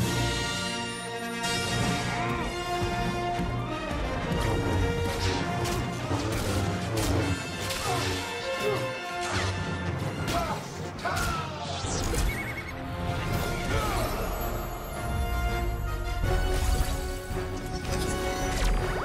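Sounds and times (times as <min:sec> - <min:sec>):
orchestral score: 0:00.0 - 0:19.0.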